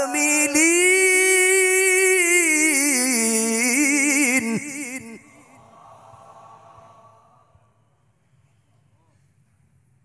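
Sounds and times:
man reciting melodically over loudspeaker: 0.0s - 7.2s.

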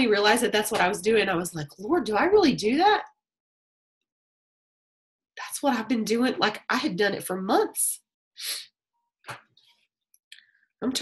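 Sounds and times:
sharp puff of breath: 8.4s - 8.7s.

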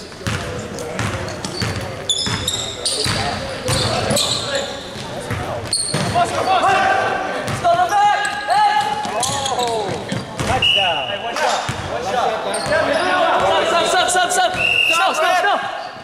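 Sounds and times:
sneakers squeaking: 0.0s - 13.8s, 14.5s - 16.0s.

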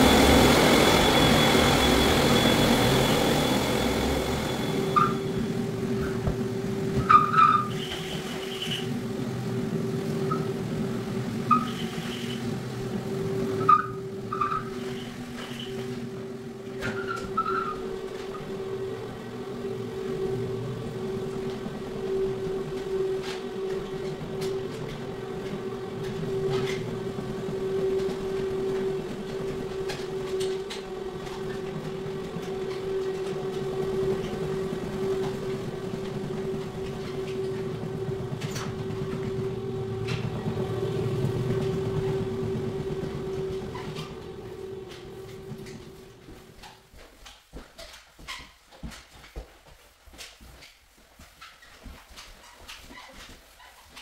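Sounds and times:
floor machine humming: 0.0s - 47.0s.

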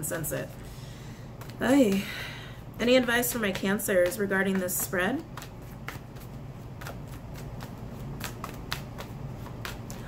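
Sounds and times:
cards shuffling rustle: 3.2s - 10.0s.

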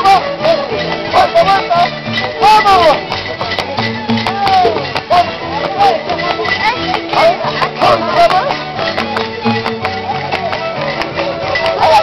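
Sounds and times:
traditional fiesta music: 0.0s - 12.0s
voices shouting: 0.0s - 12.0s.

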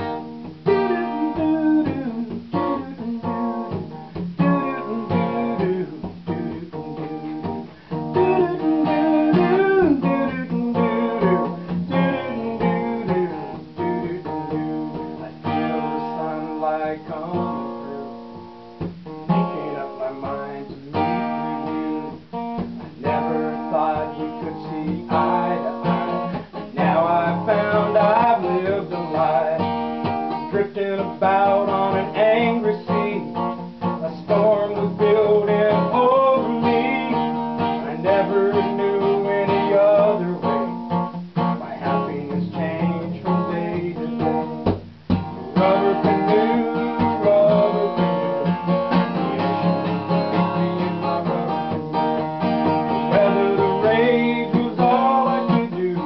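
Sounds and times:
acoustic guitar chords: 0.0s - 56.0s.

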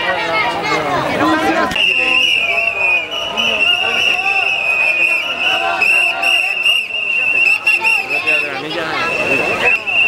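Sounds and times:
faint voices: 0.0s - 10.0s
high-pitched whistle blast: 1.7s - 10.0s.

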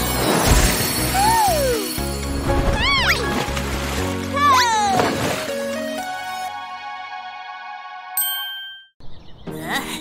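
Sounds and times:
bright bell-like ding: 8.2s - 9.0s.

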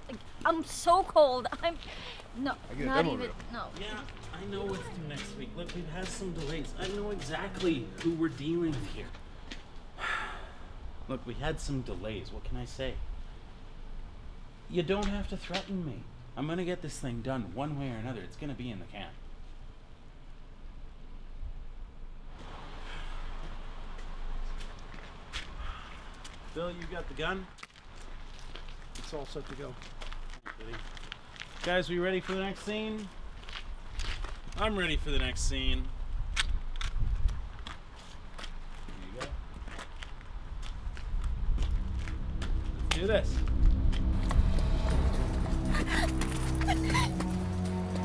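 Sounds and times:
footsteps on wet concrete steps: 3.4s - 9.9s
low rumble: 39.4s - 48.0s
dark score of low tones: 40.2s - 48.0s.

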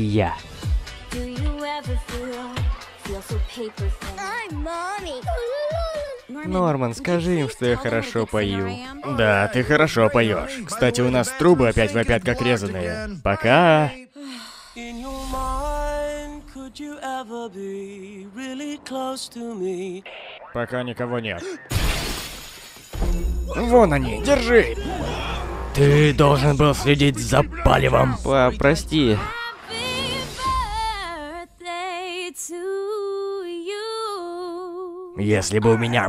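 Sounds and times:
woman singing unaccompanied: 1.1s - 9.2s, 14.0s - 20.0s, 29.2s - 35.2s
man singing slow melody: 13.8s - 20.0s.

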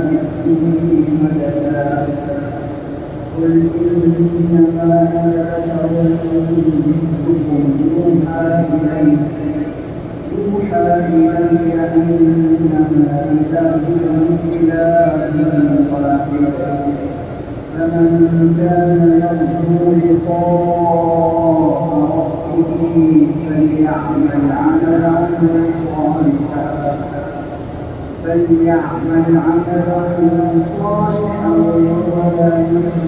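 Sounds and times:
man chanting a long note: 0.0s - 27.6s, 28.2s - 33.0s.

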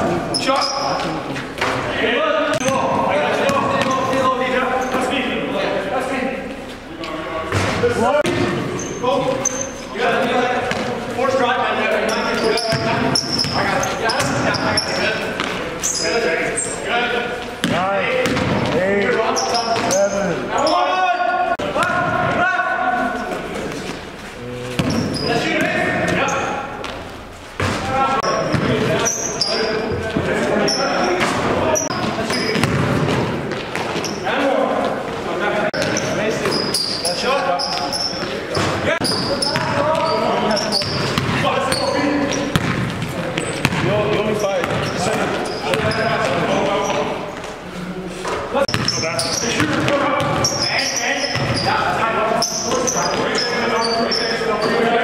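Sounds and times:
players' voices echoing: 0.0s - 55.0s
sneakers squeaking: 0.0s - 55.0s
basketball bouncing on court: 2.5s - 4.4s, 10.6s - 11.0s, 12.1s - 15.6s, 17.6s - 20.1s, 24.8s - 26.2s, 27.6s - 30.3s, 31.1s - 34.2s, 37.6s - 47.0s, 48.7s - 51.7s.

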